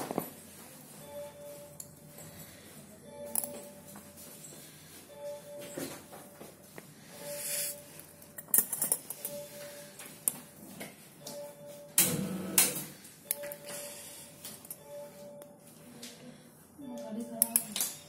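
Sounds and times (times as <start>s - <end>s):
short electronic beep: 14.8s - 15.5s.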